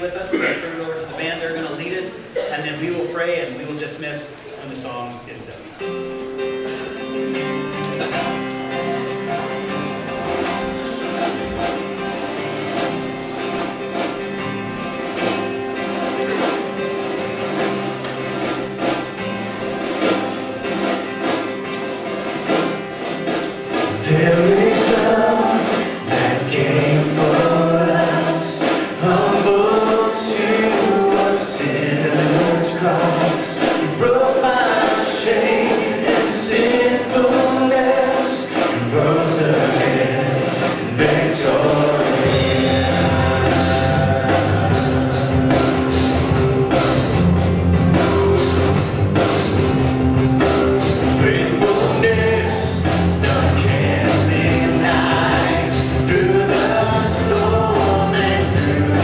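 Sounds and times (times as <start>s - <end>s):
keyboard: 0.0s - 59.0s
strummed acoustic guitar: 5.6s - 59.0s
people singing: 23.8s - 47.2s, 50.8s - 59.0s.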